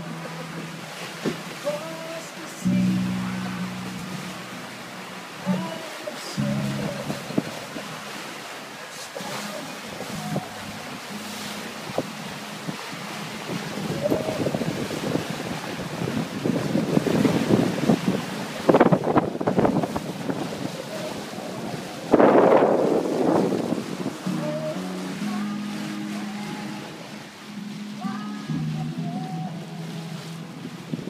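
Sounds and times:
sea water rushing past hull: 0:00.0 - 0:31.0
wind buffeting microphone: 0:06.4 - 0:08.5, 0:09.9 - 0:24.8, 0:30.2 - 0:31.0.

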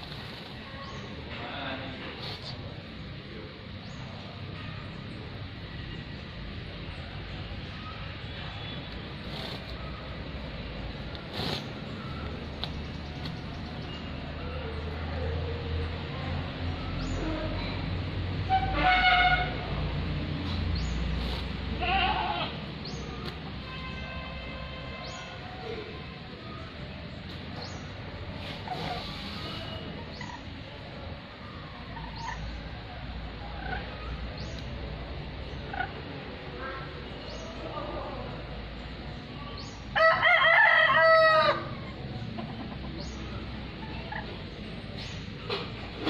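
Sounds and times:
lories squawking: 0:08.2 - 0:14.2, 0:20.8 - 0:24.2, 0:27.6 - 0:30.7, 0:31.8 - 0:34.8, 0:35.4 - 0:37.6, 0:41.0 - 0:45.5.

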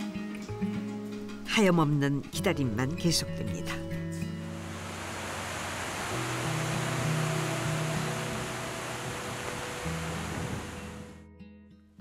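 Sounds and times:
soft background music: 0:00.0 - 0:11.9
steady rain: 0:04.5 - 0:11.2.

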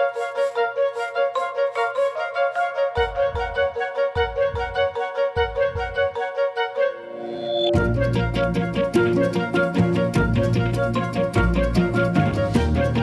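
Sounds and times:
deep bass beats: 0:03.0 - 0:06.2, 0:07.8 - 0:13.0.

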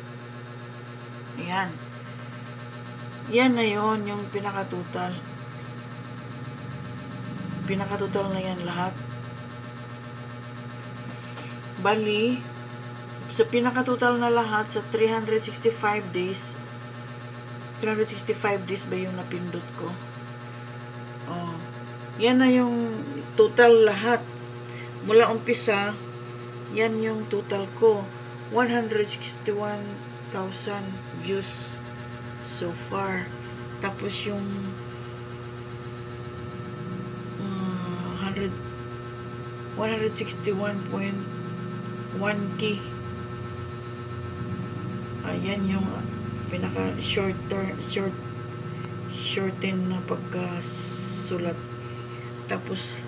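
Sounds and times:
low electrical hum: 0:00.0 - 0:53.0.

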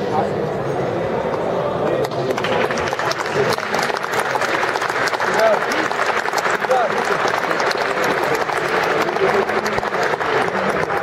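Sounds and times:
audience chattering: 0:00.0 - 0:11.0
audience clapping: 0:02.0 - 0:11.0.

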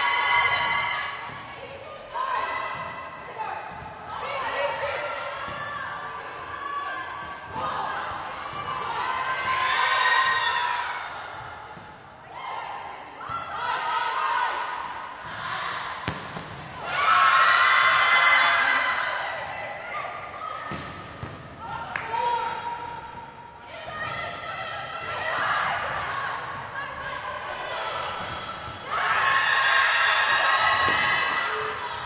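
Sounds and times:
players shouting and cheering: 0:00.0 - 0:32.0.

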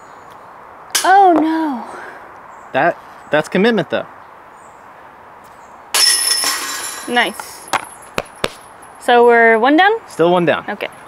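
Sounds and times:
disc hitting metal chains: 0:05.9 - 0:09.0.

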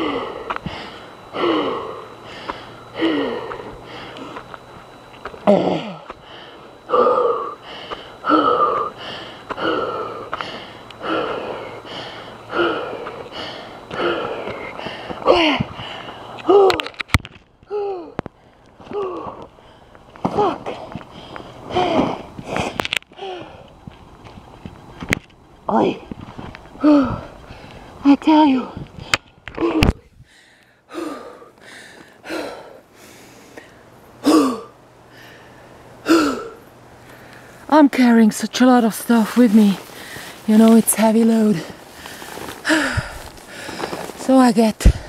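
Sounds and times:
person breathing hard: 0:00.0 - 0:04.6, 0:05.4 - 0:16.8, 0:17.7 - 0:23.8, 0:28.6 - 0:37.7, 0:39.8 - 0:40.5, 0:41.6 - 0:44.2, 0:44.8 - 0:45.0.

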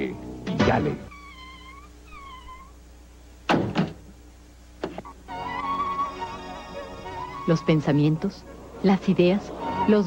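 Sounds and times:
book thudding off shelf: 0:03.5 - 0:04.0.

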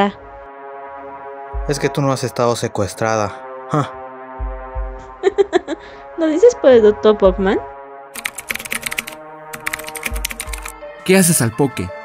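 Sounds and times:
background music: 0:00.0 - 0:12.0
rapid keyboard typing clicks: 0:08.2 - 0:10.7.

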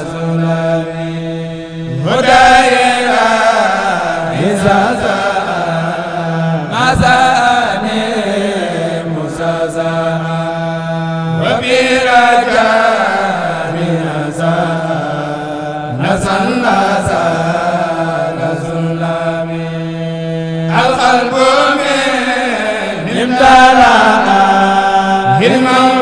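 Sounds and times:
men chanting: 0:00.0 - 0:26.0.

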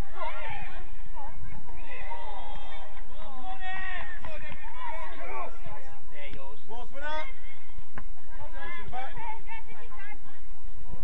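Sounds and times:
people shouting: 0:00.0 - 0:05.9.

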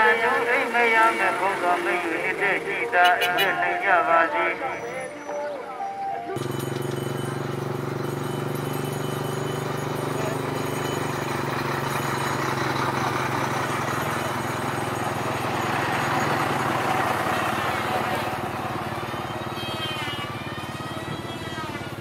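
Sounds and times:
engines idling low hum: 0:00.0 - 0:04.8, 0:06.4 - 0:22.0
voices: 0:00.0 - 0:07.2, 0:08.2 - 0:22.0
street noise: 0:00.0 - 0:22.0.

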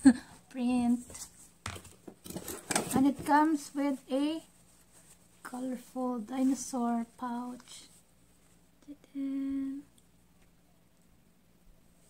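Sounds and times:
woman humming: 0:08.8 - 0:09.9.

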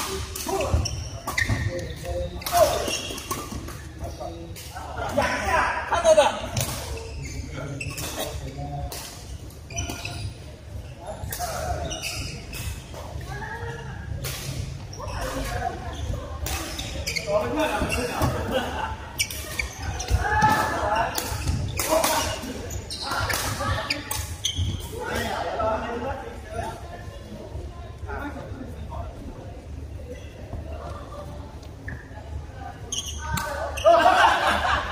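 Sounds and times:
voices of players: 0:00.0 - 0:34.9.

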